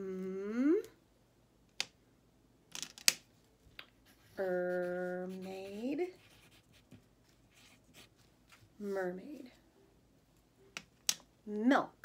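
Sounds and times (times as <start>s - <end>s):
woman humming: 0.0s - 1.0s
writing on paper: 4.1s - 8.2s.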